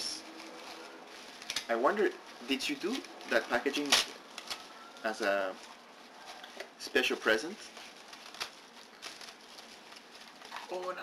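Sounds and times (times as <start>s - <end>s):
wrapping paper rustling and crinkling: 0.0s - 11.0s.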